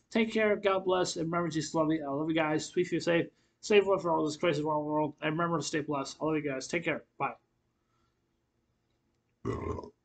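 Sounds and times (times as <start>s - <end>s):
man's short vocal sound: 9.5s - 10.0s.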